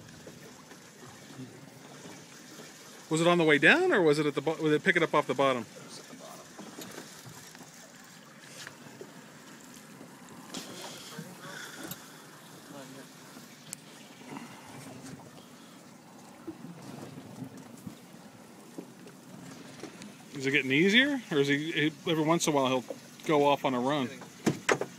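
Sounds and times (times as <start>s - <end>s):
water sloshing against hull: 0.0s - 24.9s.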